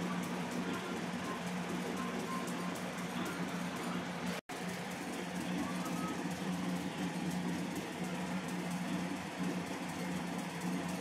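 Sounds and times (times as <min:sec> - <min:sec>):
muffled television program audio: 0:00.0 - 0:11.0
television hum and hiss: 0:00.0 - 0:11.0.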